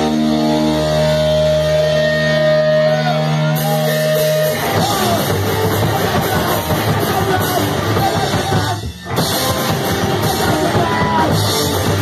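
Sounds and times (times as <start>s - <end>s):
distorted electric guitar chord ringing: 0.0s - 12.0s.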